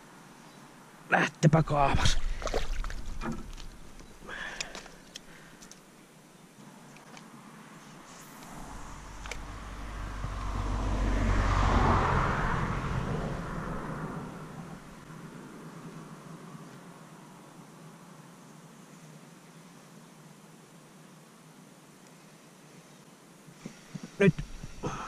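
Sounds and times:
distant vehicle passing: 8.0s - 16.6s.

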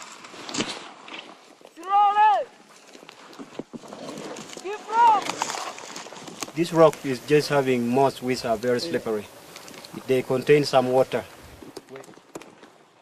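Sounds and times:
people shouting calls: 1.7s - 2.6s, 4.6s - 5.6s
rustling in dry scrub: 2.5s - 12.8s.

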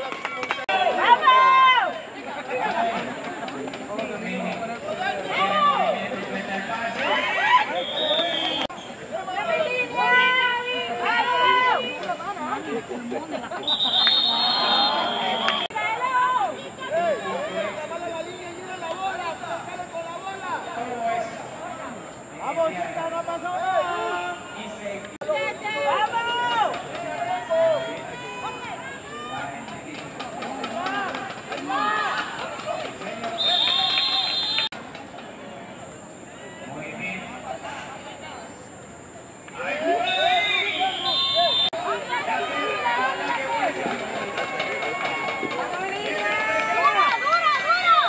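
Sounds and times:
people chattering: 0.0s - 48.0s
people shouting: 0.7s - 2.1s, 7.0s - 8.7s, 9.3s - 12.6s, 13.6s - 18.1s, 25.3s - 29.6s, 30.8s - 34.7s, 39.6s - 48.0s
referee's whistle: 7.6s - 9.0s, 13.6s - 15.7s, 33.3s - 34.7s, 39.8s - 41.8s.

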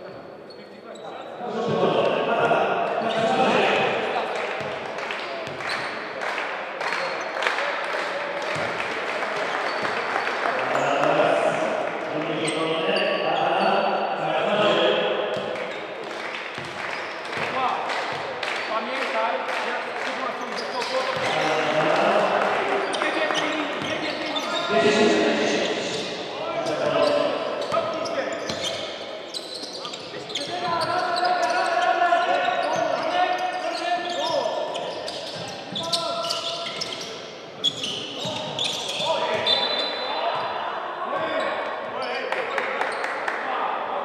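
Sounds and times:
voices talking: 0.5s - 6.0s, 9.6s - 16.0s, 17.3s - 42.9s.

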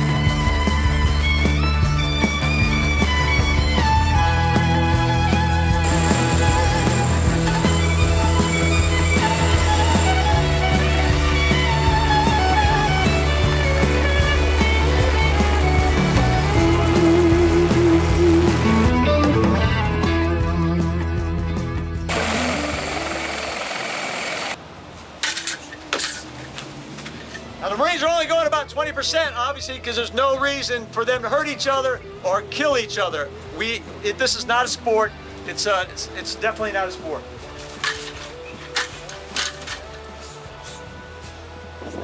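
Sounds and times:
background music with low tones: 0.0s - 23.2s, 26.8s - 42.0s
helicopter rotor rushing: 5.8s - 18.8s, 22.1s - 24.6s.

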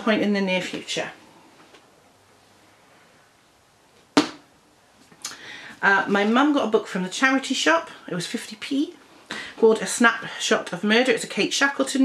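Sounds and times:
sharp knock: 4.2s - 4.5s.

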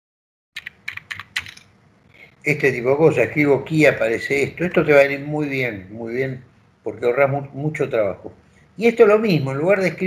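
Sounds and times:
computer keyboard typing: 0.6s - 1.7s.

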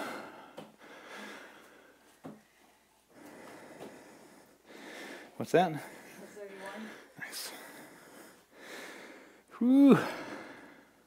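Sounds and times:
person breathing hard: 0.0s - 11.0s.

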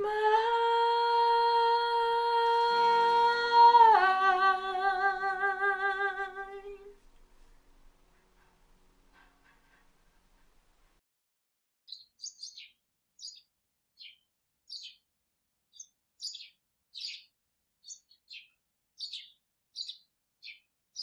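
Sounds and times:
small bird chirping: 11.9s - 15.1s, 15.7s - 21.0s.

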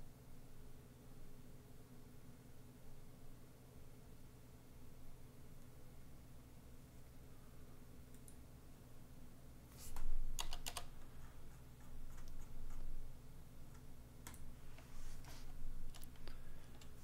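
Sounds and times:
steady low hum: 0.0s - 17.0s
computer keyboard typing: 10.0s - 12.9s, 13.7s - 14.5s, 15.2s - 17.0s.

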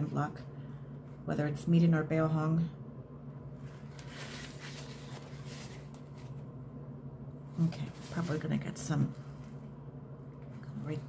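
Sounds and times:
low steady hum: 0.0s - 11.0s
paper towel rustling: 3.6s - 6.5s, 7.6s - 9.7s.

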